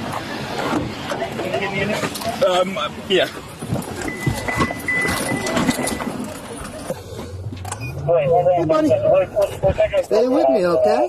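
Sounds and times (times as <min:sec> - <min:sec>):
car engine hum: 0:00.0 - 0:11.0
people scrambling in a car: 0:00.0 - 0:11.0
high-pitched electronic beep: 0:04.0 - 0:06.3, 0:07.7 - 0:08.4.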